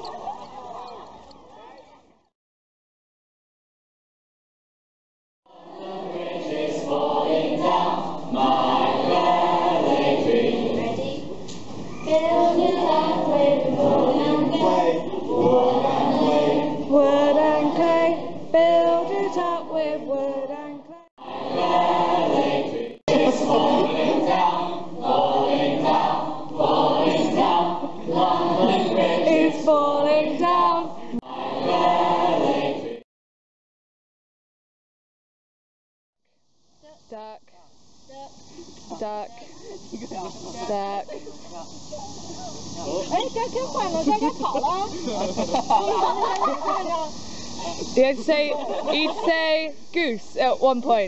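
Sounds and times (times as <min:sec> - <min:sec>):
children chattering: 0:00.0 - 0:02.2, 0:10.7 - 0:12.8, 0:39.3 - 0:49.3
group singing in chorus: 0:05.5 - 0:11.3, 0:12.0 - 0:33.0.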